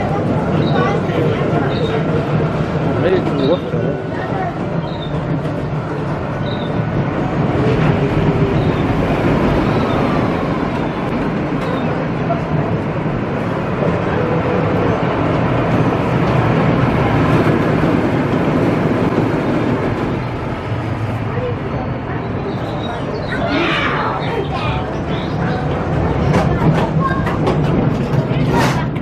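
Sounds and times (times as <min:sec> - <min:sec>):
roller coaster wheels rumbling on rails: 0:00.0 - 0:29.0.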